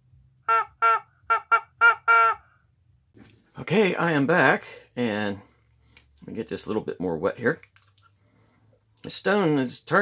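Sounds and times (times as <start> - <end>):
rubber chicken toy squawking: 0.4 - 2.6.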